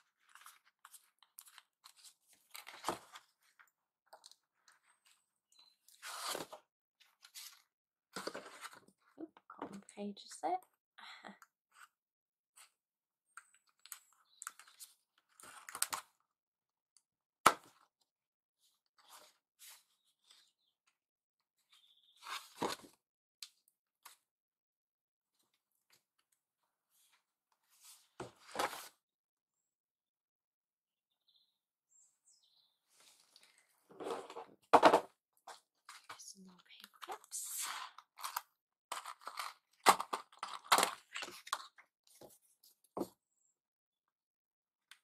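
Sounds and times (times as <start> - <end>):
card rustling and scraping: 5.9 - 9.0, 33.0 - 34.9, 37.0 - 42.4.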